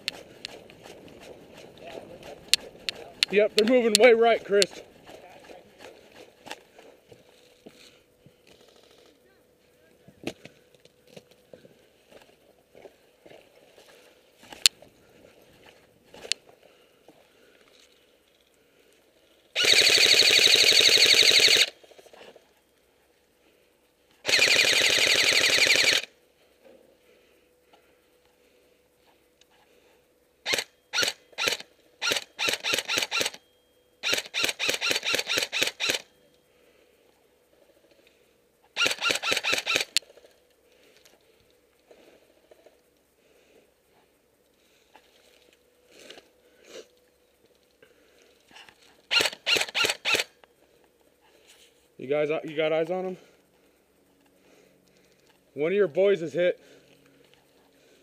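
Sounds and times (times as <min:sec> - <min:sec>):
airsoft rifle firing: 0:19.6 - 0:21.8, 0:24.2 - 0:26.1, 0:30.5 - 0:33.4, 0:34.0 - 0:36.1, 0:38.8 - 0:40.0, 0:49.1 - 0:50.3.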